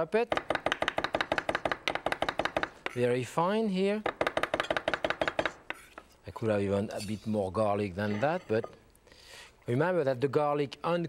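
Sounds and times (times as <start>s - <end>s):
knife chopping on wooden board: 0.3s - 3.0s.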